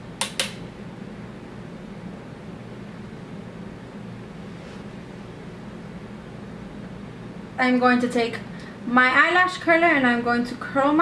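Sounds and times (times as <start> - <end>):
low fan-like hum: 0.0 - 11.0
sharp clicks: 0.2 - 0.6.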